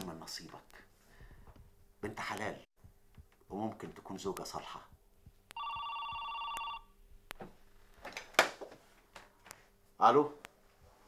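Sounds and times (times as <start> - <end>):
desk telephone ringing: 5.6 - 6.9.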